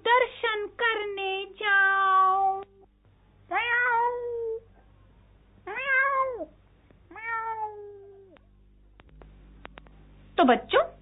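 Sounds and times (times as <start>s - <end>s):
cat meowing: 3.5s - 4.6s, 5.7s - 6.5s, 7.1s - 8.4s.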